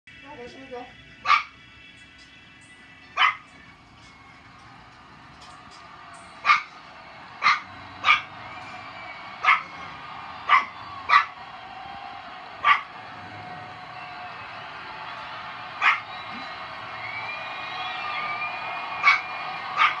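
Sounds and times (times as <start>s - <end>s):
dog barking: 1.2s - 1.5s, 3.2s - 3.5s, 6.4s - 6.8s, 7.4s - 8.3s, 9.4s - 9.7s, 10.4s - 11.4s, 12.6s - 13.0s, 15.8s - 16.1s, 19.0s - 20.0s.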